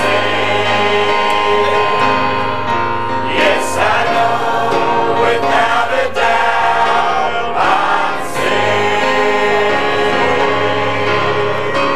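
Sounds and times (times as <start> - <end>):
choir singing gospel song: 0.0 - 11.9.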